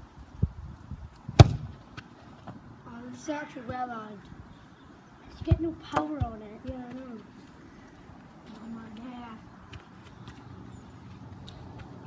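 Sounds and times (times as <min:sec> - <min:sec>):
golf club hitting football: 0:01.4 - 0:01.7
ball smacking goal: 0:01.4 - 0:01.8.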